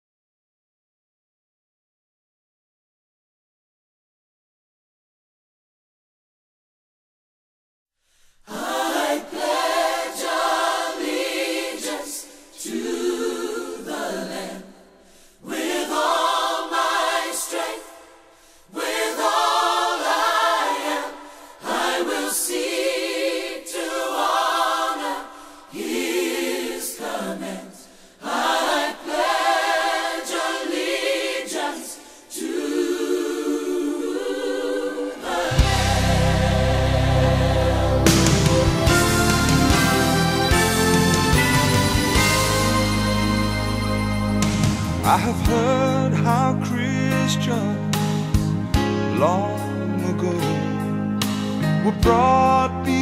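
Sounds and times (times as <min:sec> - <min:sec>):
choir singing unaccompanied: 0:08.5 - 0:45.8
backing music with deep bass: 0:35.5 - 0:53.0.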